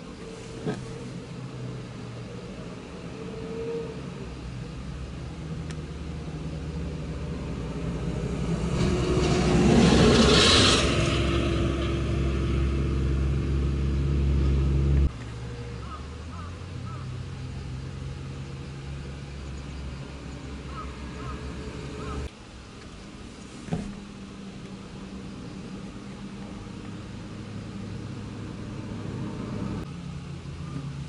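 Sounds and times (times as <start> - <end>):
low engine drone: 0.0 - 31.0
car passing by: 5.4 - 22.3.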